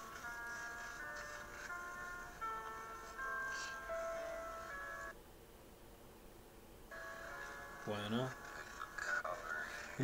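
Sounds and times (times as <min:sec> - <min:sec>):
soft sustained background music: 0:00.0 - 0:05.2, 0:06.9 - 0:10.0.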